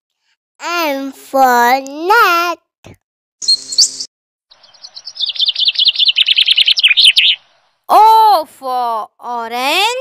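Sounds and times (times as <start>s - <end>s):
bird chattering chirps: 3.4s - 7.6s.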